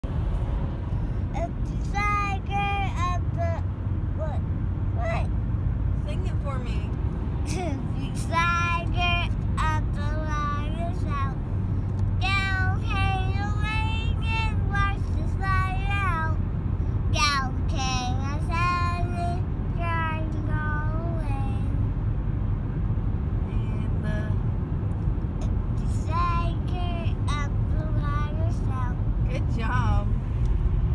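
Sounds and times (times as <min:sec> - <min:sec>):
car road rumble: 0:00.0 - 0:30.9
toddler singing: 0:01.4 - 0:03.6.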